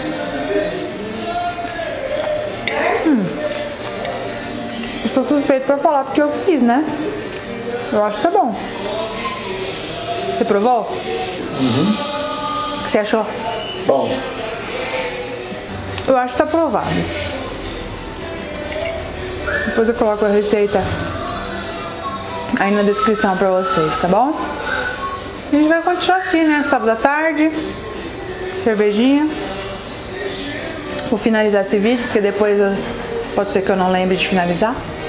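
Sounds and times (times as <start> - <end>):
background music: 0.0 - 35.0
fork clinking on plate: 2.2 - 5.0, 18.6 - 19.1.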